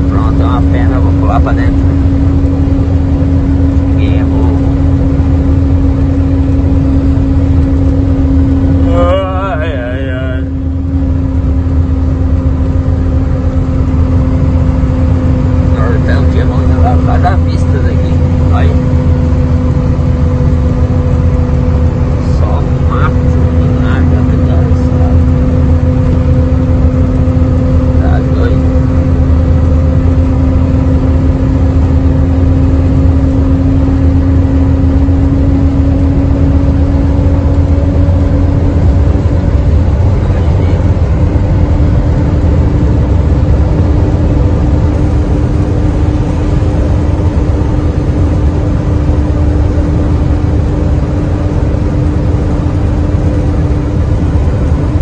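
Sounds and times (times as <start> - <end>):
road noise rumble: 0.0 - 55.0
truck engine drone: 0.0 - 55.0.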